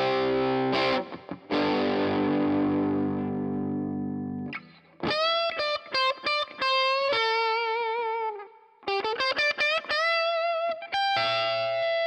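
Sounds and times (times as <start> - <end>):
overdriven electric guitar chords: 0.0 - 12.0
sustained lead guitar notes: 0.0 - 12.0.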